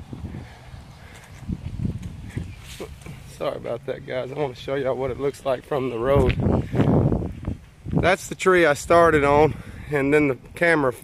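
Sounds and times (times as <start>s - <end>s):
microphone handling rumble: 0.0s - 9.8s.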